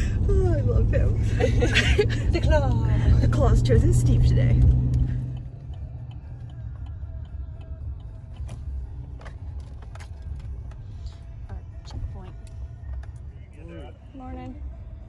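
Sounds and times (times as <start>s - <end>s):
road noise: 0.0s - 15.0s
truck engine rumble: 0.0s - 15.0s.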